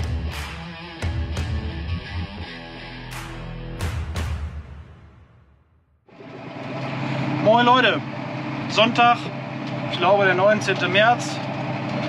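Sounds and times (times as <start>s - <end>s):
electric guitar music: 0.0s - 4.3s
tractor engine running: 6.1s - 12.0s.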